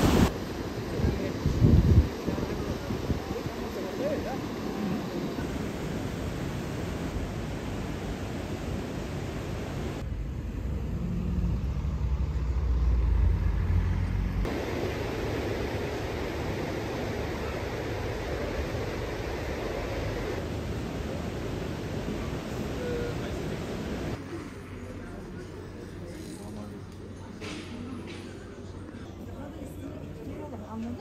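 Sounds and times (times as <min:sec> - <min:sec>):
river water pouring over weir: 0:00.0 - 0:10.0, 0:14.5 - 0:24.2
outdoor background noise: 0:00.0 - 0:31.0.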